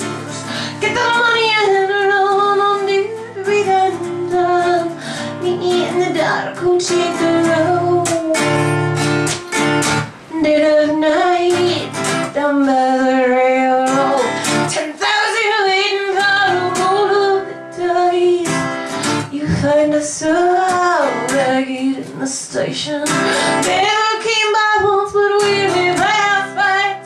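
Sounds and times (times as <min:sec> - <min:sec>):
woman singing: 0:00.0 - 0:09.2, 0:10.3 - 0:27.0
acoustic guitar: 0:00.0 - 0:27.0.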